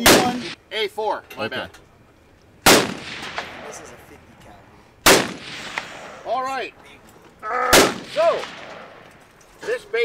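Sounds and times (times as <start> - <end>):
loud gunshots with echo: 0.0 - 0.6, 2.6 - 3.9, 5.0 - 6.3, 7.6 - 9.0.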